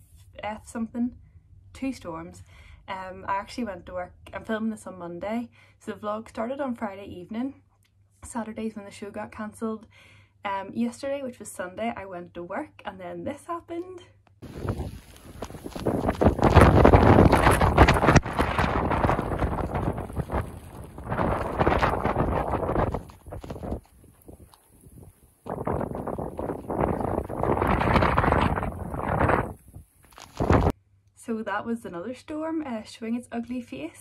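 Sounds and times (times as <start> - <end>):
wind buffeting microphone: 14.4 - 30.7.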